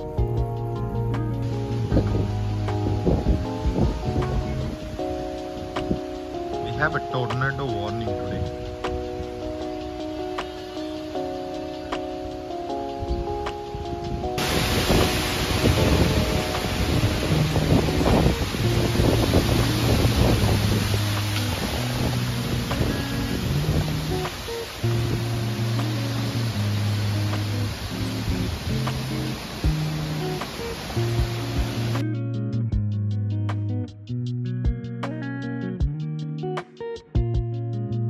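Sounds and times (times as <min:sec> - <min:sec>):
storm wind rushing through trees: 0:00.0 - 0:32.0
wind buffeting microphone: 0:00.0 - 0:32.0
background music with bass line: 0:00.0 - 0:38.0
plucked guitar: 0:00.0 - 0:38.0.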